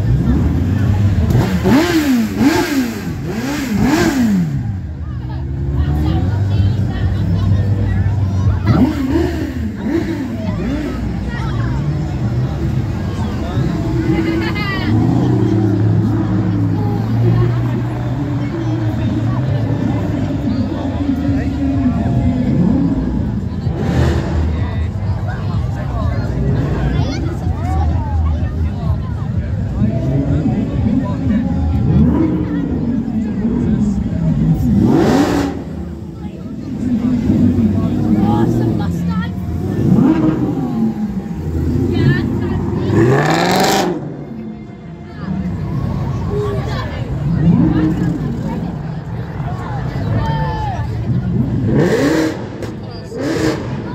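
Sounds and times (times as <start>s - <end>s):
car engine droning: 0.0s - 53.9s
crowd chatter: 0.0s - 53.9s.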